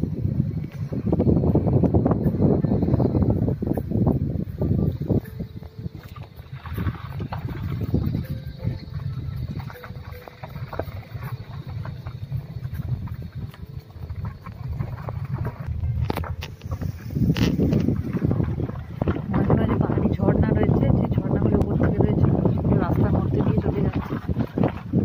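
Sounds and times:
vehicle rumbling on road: 0.0s - 25.0s
wind buffeting microphone: 0.0s - 25.0s.

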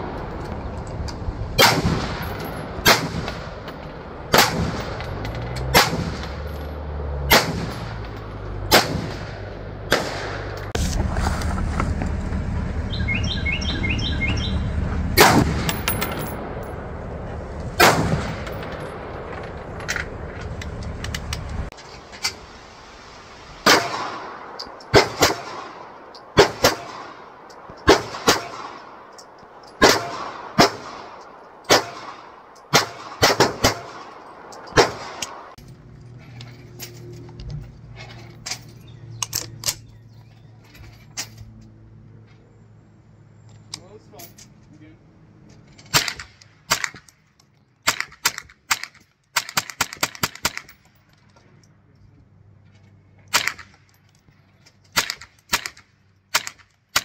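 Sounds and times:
rifle shots: 1.6s - 6.5s, 7.2s - 10.8s, 15.2s - 17.0s, 17.7s - 20.2s, 23.6s - 29.1s, 29.8s - 35.6s
handgun shots: 29.8s - 35.4s.

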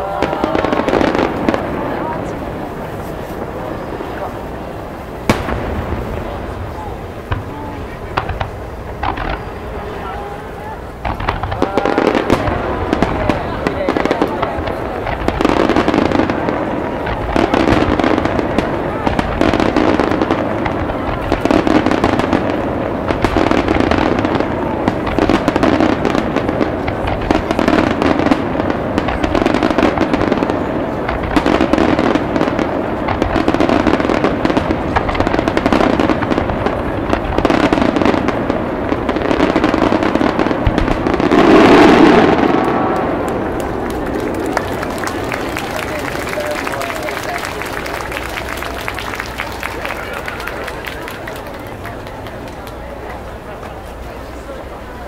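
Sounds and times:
firework shells bursting: 4.9s - 10.0s, 10.9s - 54.0s.

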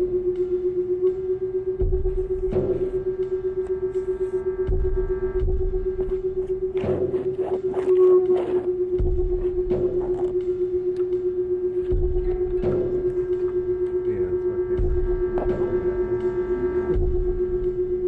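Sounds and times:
steady held drone tone: 0.0s - 18.0s.

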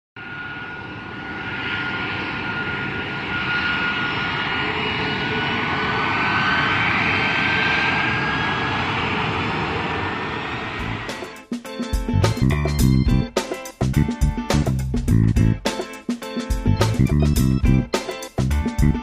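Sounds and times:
jet engine rushing and whining: 0.2s - 13.9s.

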